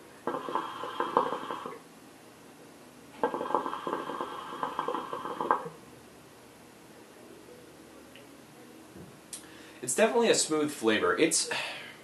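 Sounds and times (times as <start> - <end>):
hookah water bubbling: 0.2 - 1.9, 3.2 - 5.9.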